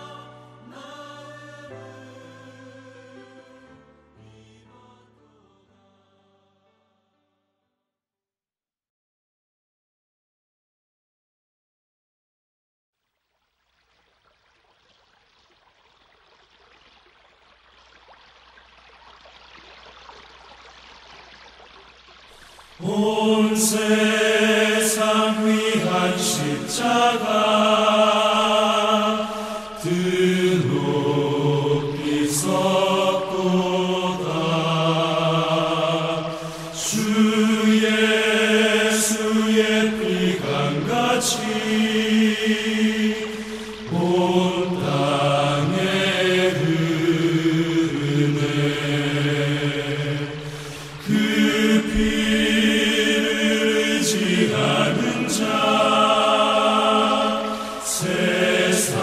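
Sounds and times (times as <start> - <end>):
voices singing a worship song: 0.0 - 6.7, 22.6 - 59.0.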